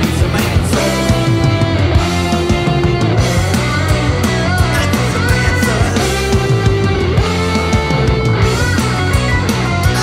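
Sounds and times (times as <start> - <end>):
bass guitar: 0.0 - 10.0
electric guitar: 0.0 - 10.0
steady drum beat: 0.0 - 10.0.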